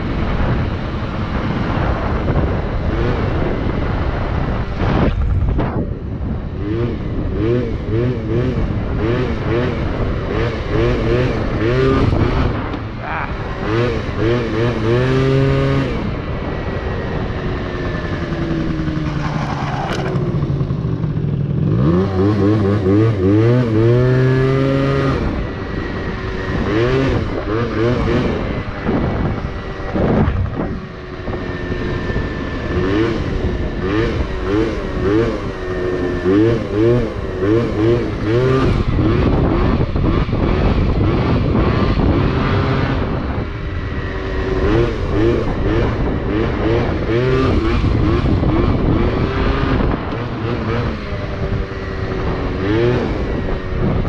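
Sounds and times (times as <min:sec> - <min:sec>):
two-stroke scooter engine revving: 0:00.0 - 0:54.0.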